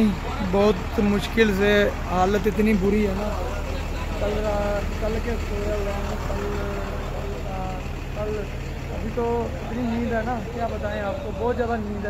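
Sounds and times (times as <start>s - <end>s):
diesel truck engine idling: 0.0s - 12.0s
man talking: 0.0s - 12.0s.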